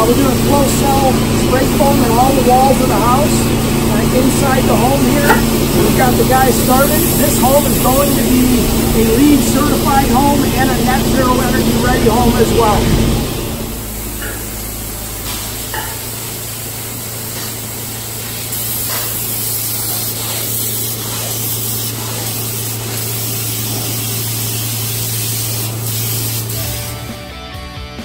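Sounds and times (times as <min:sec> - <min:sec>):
spray foam gun hissing: 0:00.0 - 0:12.8, 0:13.8 - 0:27.1
music: 0:00.0 - 0:13.3, 0:26.2 - 0:28.0
low hum: 0:00.0 - 0:17.2.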